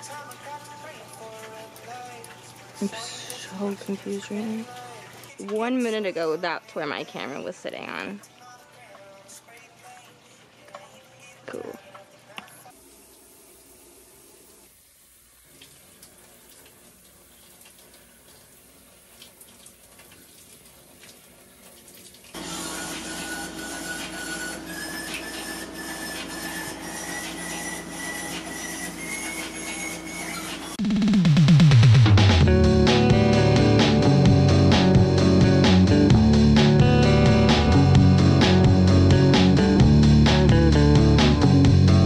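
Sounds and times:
shower water spraying: 0.0 - 6.0, 12.7 - 30.8
music: 0.0 - 12.8, 23.0 - 42.0
thin whistling tone: 22.6 - 30.8.

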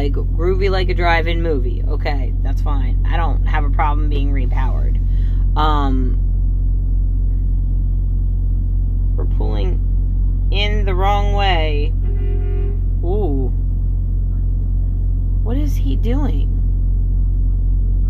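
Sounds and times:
diesel truck engine idling: 0.0 - 18.0.

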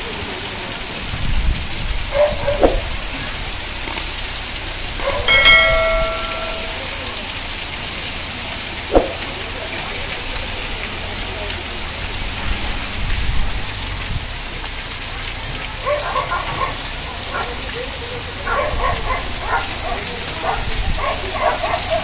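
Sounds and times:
heavy rain on roofs: 0.0 - 22.0
bell-like chime: 5.3 - 7.1
sharp knock: 8.9 - 9.2.

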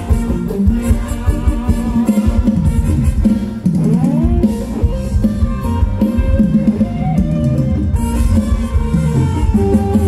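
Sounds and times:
drum kit beat: 0.0 - 10.0
guitar: 0.0 - 10.0
live band dance music: 0.0 - 10.0.

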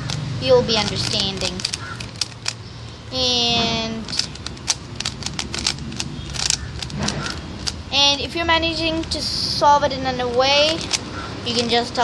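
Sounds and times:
puzzle cube clicking: 0.0 - 2.6, 3.6 - 7.8, 8.8 - 9.2, 10.2 - 11.9.

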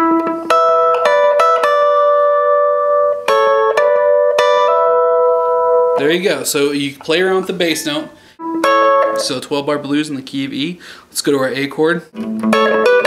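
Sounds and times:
clean electric guitar lick: 0.0 - 6.2, 7.5 - 10.1, 12.1 - 13.0.

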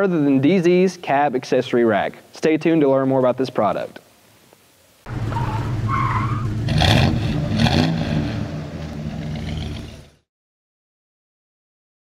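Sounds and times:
tire squeal: 5.1 - 10.1
car engine revving: 5.1 - 10.3.

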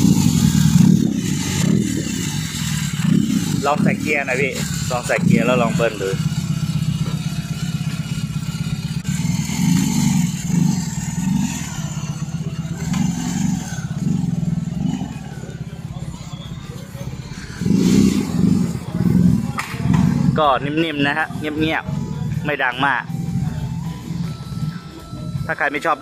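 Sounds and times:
motorcycle engine low rumble: 0.0 - 26.0
motorcycle throttle blips: 0.0 - 26.0.

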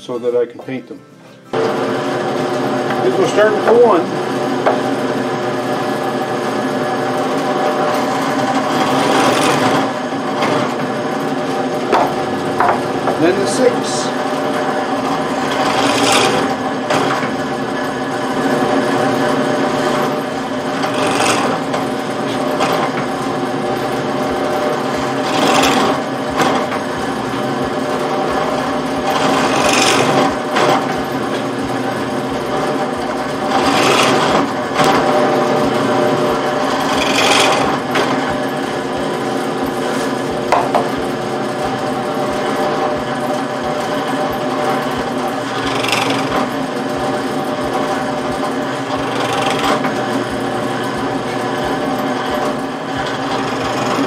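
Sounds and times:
drill press motor humming: 1.5 - 54.0
drill bit rasping into wood: 1.6 - 54.0.

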